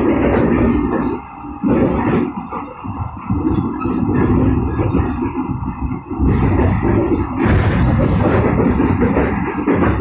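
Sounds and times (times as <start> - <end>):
train car body shaking: 0.0 - 10.0
train wheels on track: 0.0 - 10.0.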